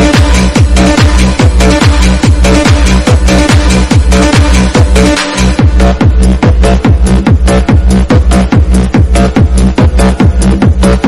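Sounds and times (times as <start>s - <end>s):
fast electronic dance music: 0.0s - 11.0s.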